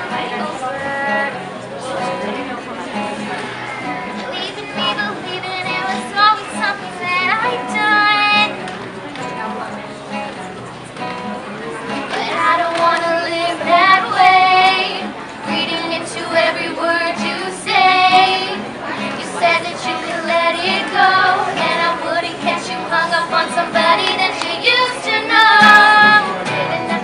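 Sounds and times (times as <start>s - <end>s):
acoustic guitar strumming: 0.0s - 27.0s
young female voices singing: 4.8s - 8.5s, 12.1s - 27.0s.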